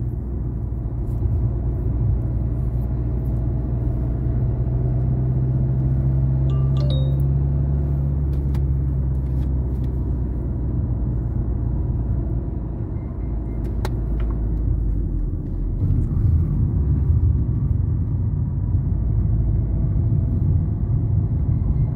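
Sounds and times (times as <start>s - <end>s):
car engine hum: 0.0s - 21.9s.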